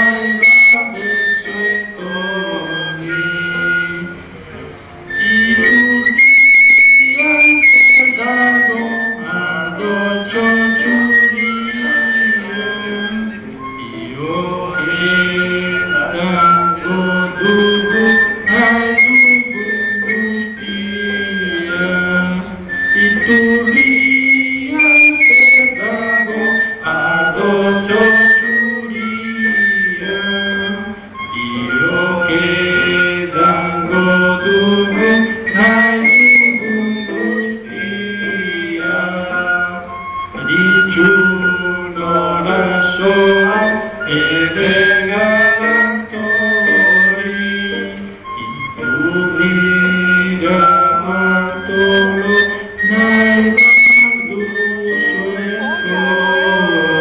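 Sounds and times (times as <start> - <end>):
men singing together: 0.0 - 4.3, 5.1 - 57.0
harmonium reed tones: 0.0 - 57.0.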